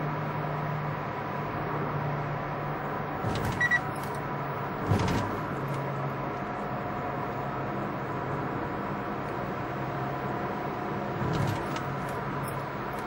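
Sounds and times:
car cabin hum: 3.1 - 6.0, 11.1 - 13.0
brief high beep: 3.6 - 3.8.

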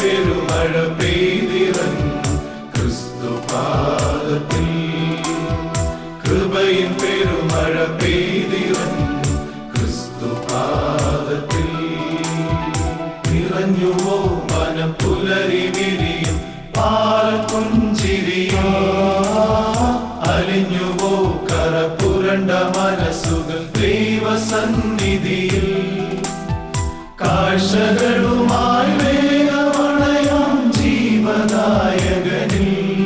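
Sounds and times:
male choir singing in harmony: 0.0 - 33.0
orchestrated music with steady beat: 0.0 - 33.0.

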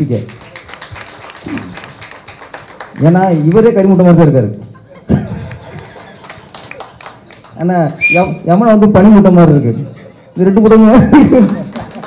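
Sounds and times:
audience clapping: 0.0 - 4.1, 5.2 - 8.0, 11.1 - 12.0.

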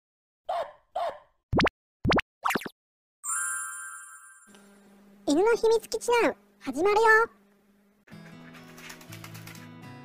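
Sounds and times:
cartoon plops: 1.5 - 2.7
sparkling chime: 3.3 - 4.5.

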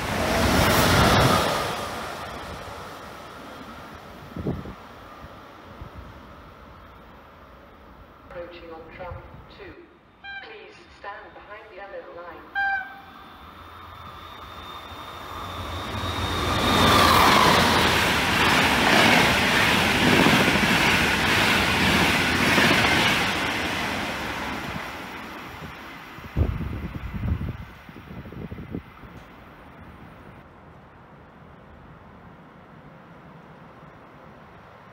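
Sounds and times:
train wheels rushing: 0.0 - 3.5, 13.4 - 29.3
locomotive high whine: 12.3 - 19.5.

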